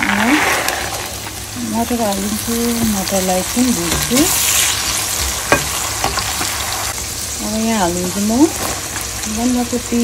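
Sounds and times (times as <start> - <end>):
food sizzling in hot oil: 0.0 - 10.0
spatula stirring in pan: 2.6 - 7.0.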